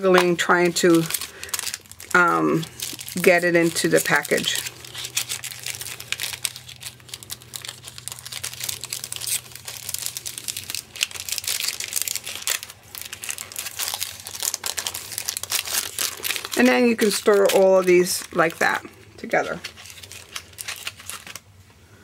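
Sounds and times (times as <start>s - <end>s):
cellophane crinkling: 0.0s - 21.6s.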